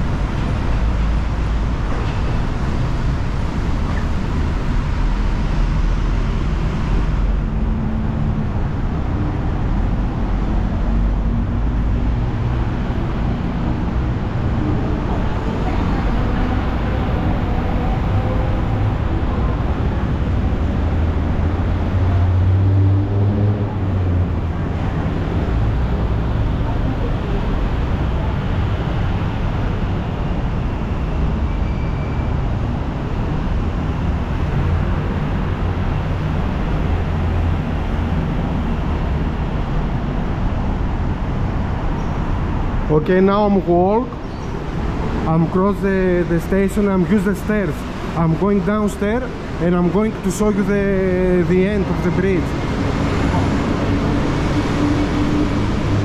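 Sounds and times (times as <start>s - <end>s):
city road traffic rumble: 0.0s - 56.0s.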